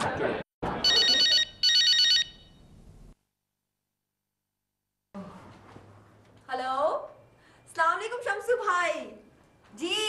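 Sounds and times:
electronic telephone ringing: 0.8 - 2.6.

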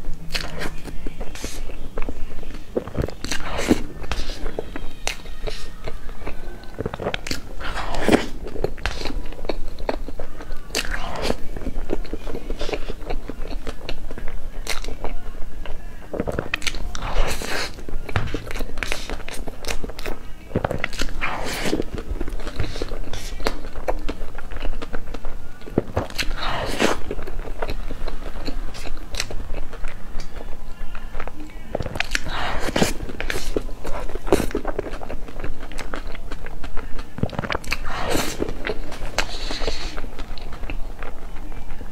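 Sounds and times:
person chewing: 0.0 - 41.9.

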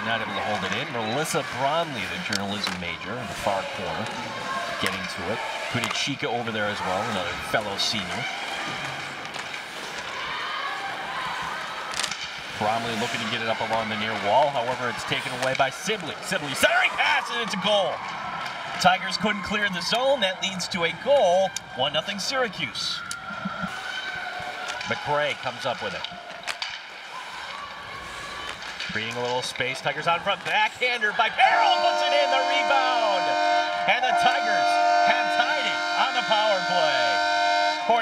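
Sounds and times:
distant crowd voices: 0.0 - 38.0
hockey game on ice: 0.0 - 38.0.

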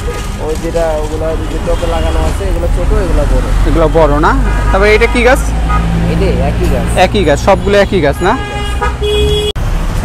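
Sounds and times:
vehicle horns: 0.0 - 2.7, 3.8 - 6.0, 7.3 - 9.6
traffic rumble: 0.0 - 10.0.

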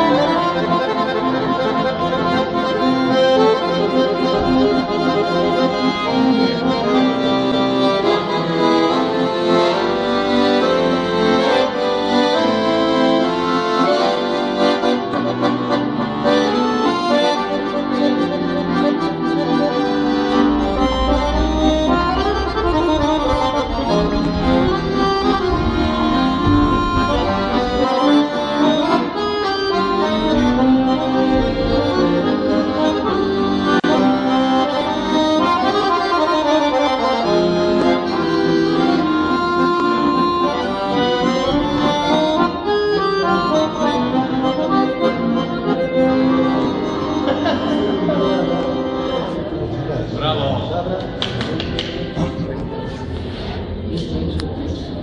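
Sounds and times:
accordions playing a folk tune: 0.0 - 50.4.

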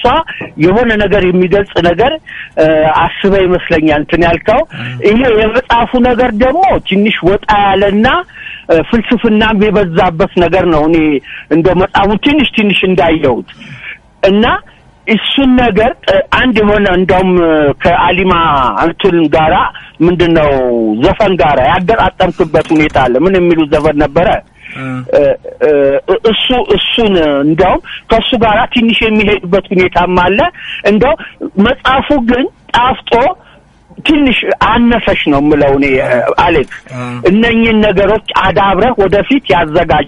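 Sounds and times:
person talking: 0.0 - 33.4, 34.0 - 40.0
man talking over phone: 24.8 - 25.1, 35.9 - 37.3.

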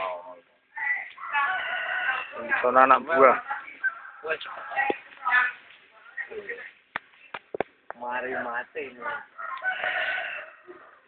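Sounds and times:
rooster crowing: 1.2 - 2.6, 9.4 - 11.0.

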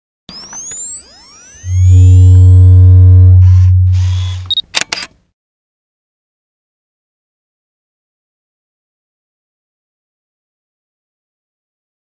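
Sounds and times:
short high beep: 0.4 - 4.6
deep hum with higher tones: 0.9 - 4.6
camera shutter clicks: 4.2 - 5.2.

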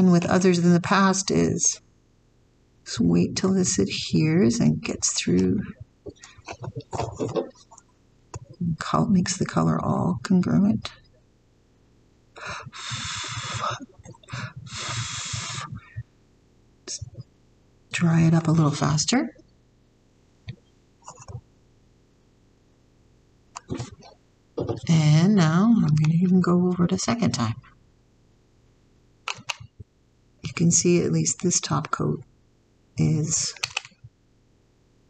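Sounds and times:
person blowing air: 12.4 - 16.0.

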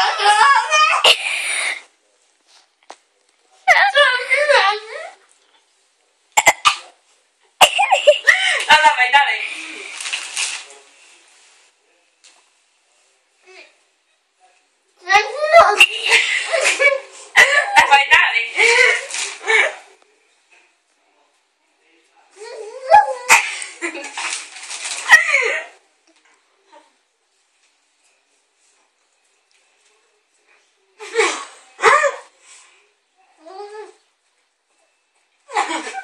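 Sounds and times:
girl coughing: 6.4 - 6.9, 7.6 - 8.4.

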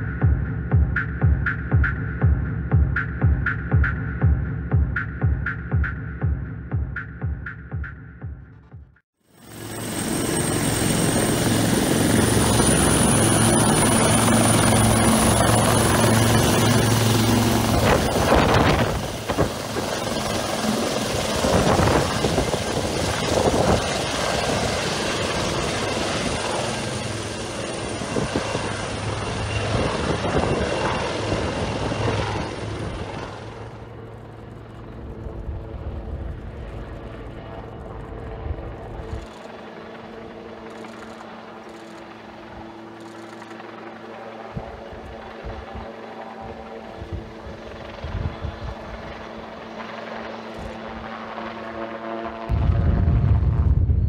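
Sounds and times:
helicopter turbine whine: 9.2 - 53.2
helicopter rotor noise: 9.3 - 52.5.

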